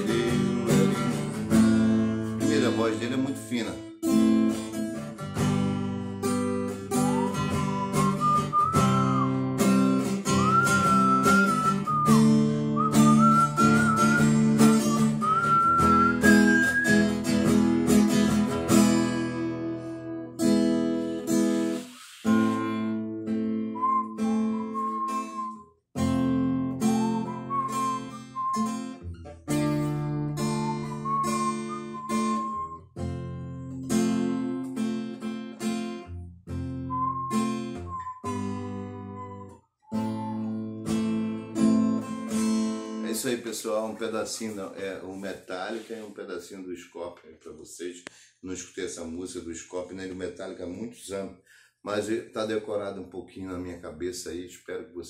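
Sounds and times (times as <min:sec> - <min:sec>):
acoustic guitar ballad: 0:00.0 - 0:45.9
whistled melody: 0:06.6 - 0:17.6, 0:21.7 - 0:33.5, 0:36.6 - 0:42.8.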